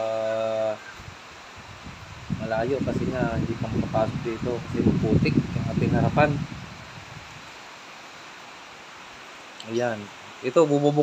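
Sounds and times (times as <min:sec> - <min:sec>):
low outdoor background noise: 0:00.0 - 0:11.0.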